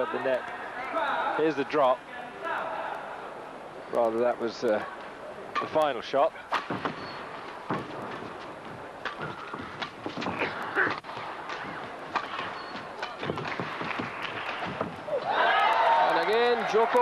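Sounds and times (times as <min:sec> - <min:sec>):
racket hitting shuttlecock: 0:06.5 - 0:08.4, 0:09.0 - 0:15.4
footfalls on court: 0:06.6 - 0:15.3.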